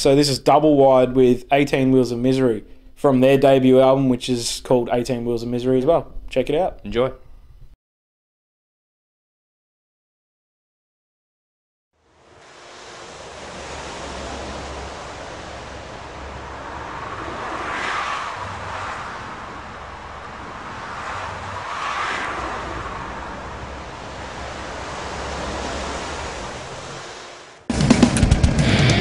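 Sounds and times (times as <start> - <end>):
steady rushing noise: 12.0 - 29.0
low rumble: 12.1 - 29.0.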